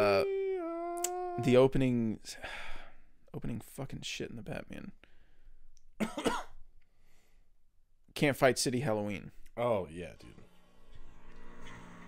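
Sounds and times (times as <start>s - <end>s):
faint breathing: 2.3s - 3.2s, 5.0s - 5.7s, 6.9s - 7.6s
man coughing: 6.0s - 6.6s.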